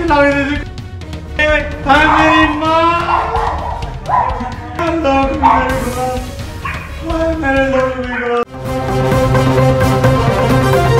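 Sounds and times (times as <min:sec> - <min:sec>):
background music: 0:00.0 - 0:10.9.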